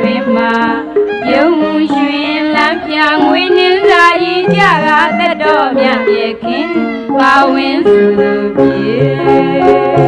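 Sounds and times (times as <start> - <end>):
instrumental accompaniment: 0.0 - 10.0
person singing ornamented notes: 0.0 - 10.0.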